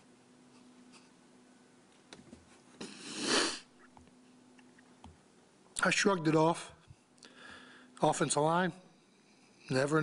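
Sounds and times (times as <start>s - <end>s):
man sniffing through nose: 2.8s - 3.7s.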